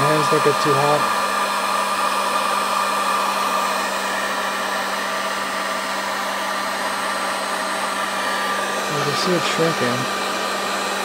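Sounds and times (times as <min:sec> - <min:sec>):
heat gun blowing air: 0:00.0 - 0:11.0.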